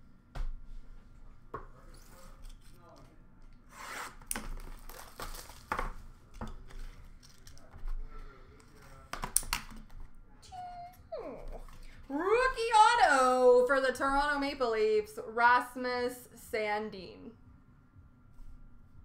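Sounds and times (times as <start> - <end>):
cards and wrappers rustling: 4.3 - 10.1.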